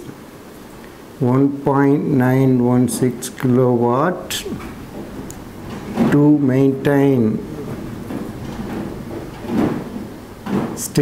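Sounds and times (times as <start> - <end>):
person speaking: 3.0 - 4.9.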